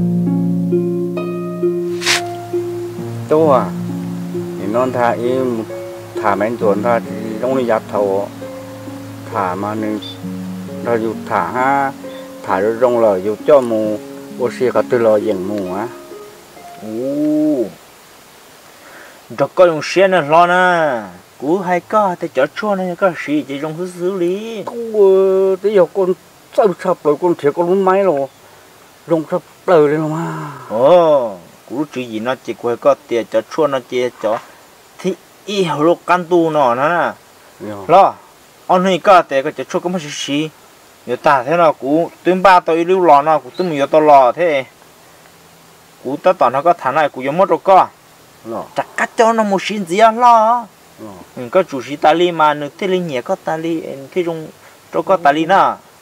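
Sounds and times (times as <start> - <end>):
faint low buzz: 0.0 - 18.9
man speaking: 3.3 - 3.9, 4.6 - 8.3, 9.2 - 10.2, 10.8 - 16.1, 16.8 - 17.8, 29.1 - 34.4, 48.4 - 55.6
man's drawn-out ohh: 30.0 - 31.4, 51.0 - 51.3.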